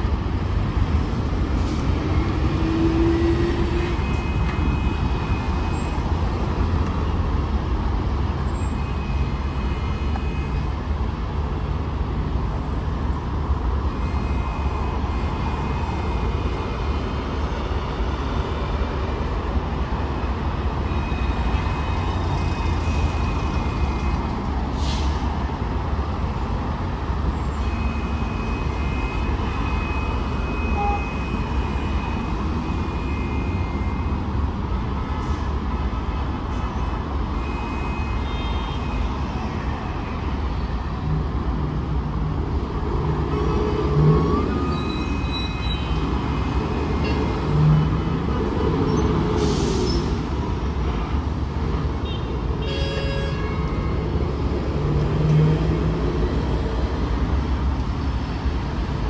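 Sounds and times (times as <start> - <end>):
traffic rumble: 0.0 - 59.0.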